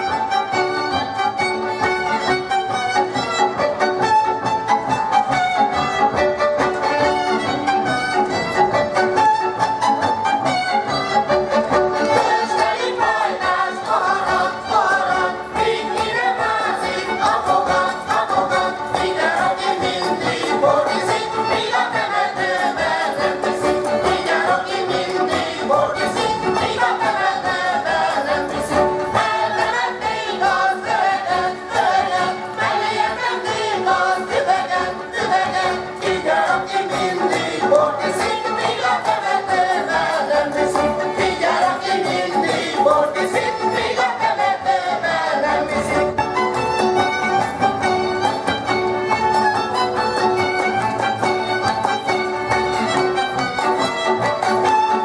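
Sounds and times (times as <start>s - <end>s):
group singing folk song: 0.0s - 55.0s.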